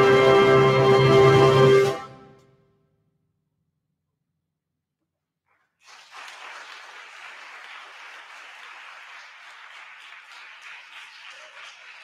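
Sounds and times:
audience applauding: 5.8s - 12.0s.

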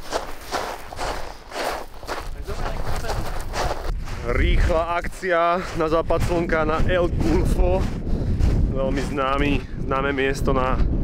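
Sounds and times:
footsteps on cinder: 0.0s - 9.6s.

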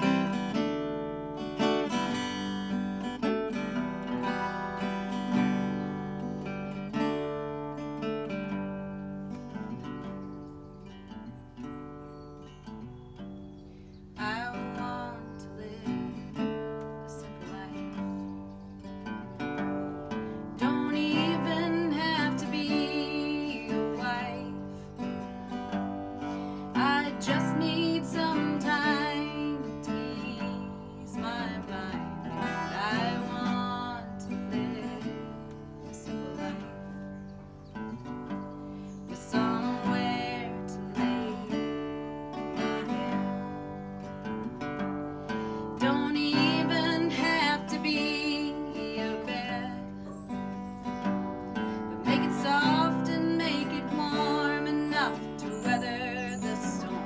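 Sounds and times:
woman singing: 0.0s - 0.6s, 14.2s - 18.6s, 19.6s - 37.2s, 39.0s - 43.9s, 45.6s - 57.0s
acoustic guitar: 0.0s - 57.0s.

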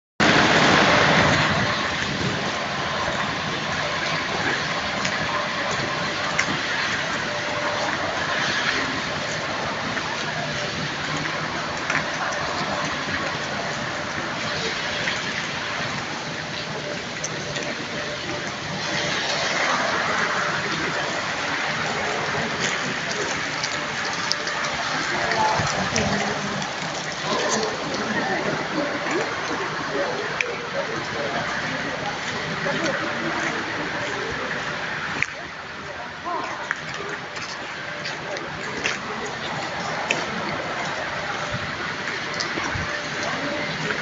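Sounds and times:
street ambience rushing noise: 0.2s - 44.0s.

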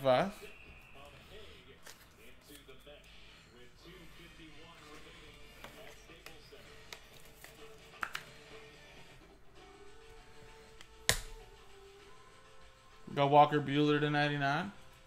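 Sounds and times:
faint background music: 0.0s - 15.0s
trading cards clicking and tapping: 4.9s - 8.4s.

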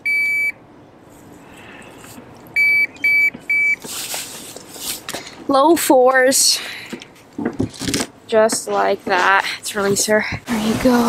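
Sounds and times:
digital scale beeping: 0.0s - 0.6s, 2.6s - 3.8s.

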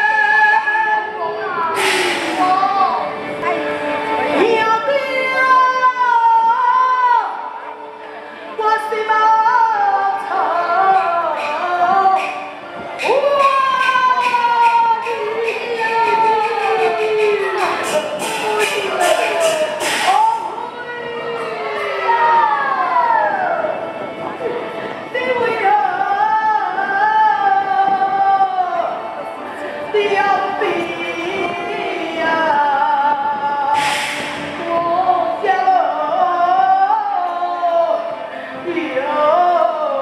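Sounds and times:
musical accompaniment: 0.0s - 40.0s
opera singing high voice: 0.0s - 40.0s
opera singer sliding note: 1.8s - 2.5s, 33.8s - 34.5s.

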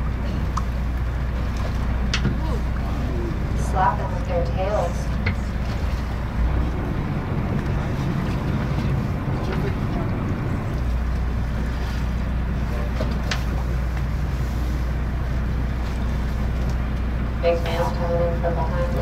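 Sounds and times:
boat engine hum: 0.0s - 19.0s.

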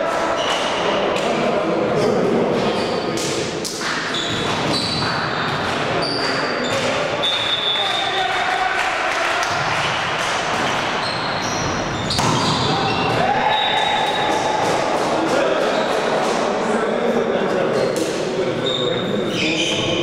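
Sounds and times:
shoes squeaking on floor: 3.9s - 7.9s, 10.6s - 13.7s, 17.8s - 20.0s
volleyball hits: 11.9s - 15.9s
players shouting: 12.3s - 16.4s.

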